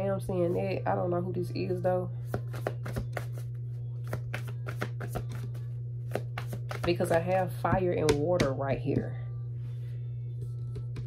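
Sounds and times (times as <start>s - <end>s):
steady low hum: 0.0s - 11.0s
cards snapping and tapping: 2.3s - 7.2s.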